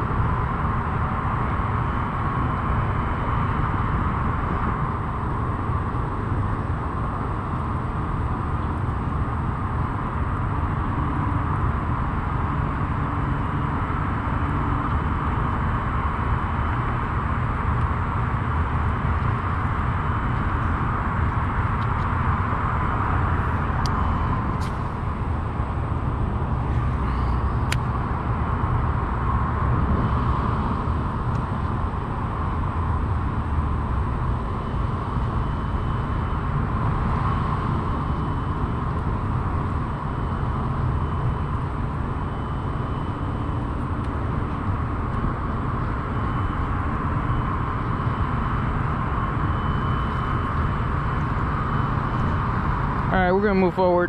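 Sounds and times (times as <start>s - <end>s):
wind rumble on microphone: 0.0s - 53.7s
distant traffic hum: 0.0s - 54.0s.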